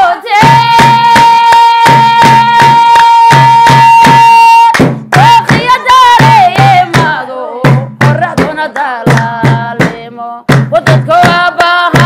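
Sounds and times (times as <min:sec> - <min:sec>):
women singing: 0:00.0 - 0:12.0
drum beat: 0:00.3 - 0:12.0
hand claps: 0:00.4 - 0:12.0.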